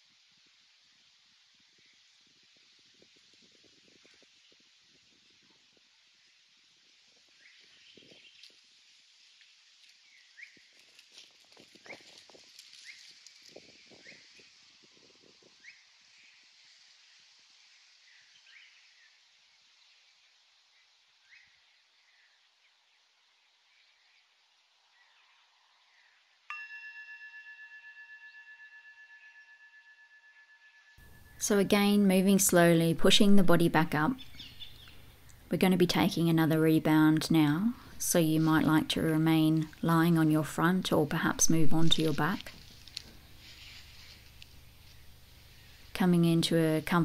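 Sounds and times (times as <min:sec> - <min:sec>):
rustles in dry leaves: 0:00.0 - 0:26.4, 0:37.8 - 0:47.0
singing bowl ringing: 0:26.5 - 0:31.8
faint bird chirps: 0:33.9 - 0:35.2.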